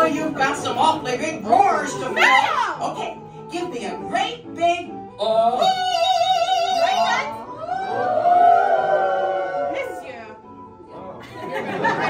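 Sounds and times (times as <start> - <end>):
mock-operatic singing: 5.1 - 7.4.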